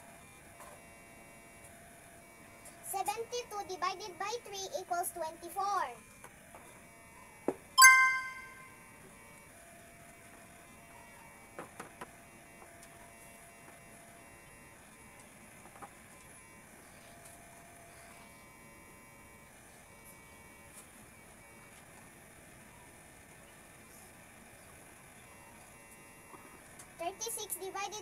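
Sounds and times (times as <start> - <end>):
bright chime: 7.8 - 8.7.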